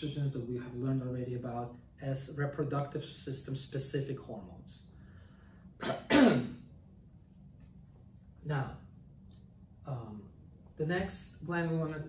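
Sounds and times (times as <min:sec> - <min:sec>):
man clearing his throat: 0:05.8 - 0:06.7.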